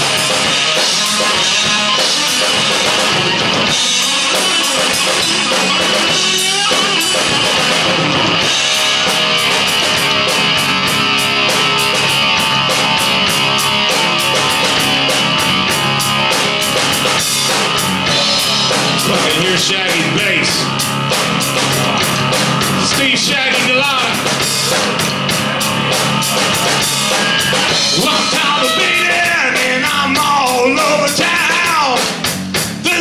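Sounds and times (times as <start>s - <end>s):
heavy rock band playing: 0.0s - 33.0s.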